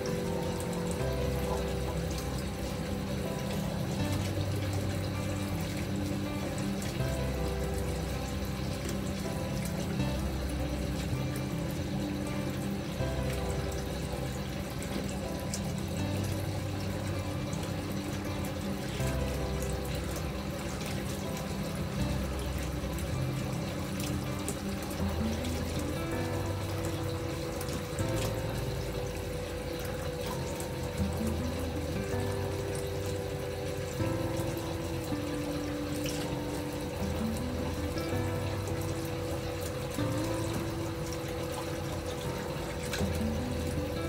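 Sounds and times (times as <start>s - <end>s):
calm background music: 0.0s - 44.0s.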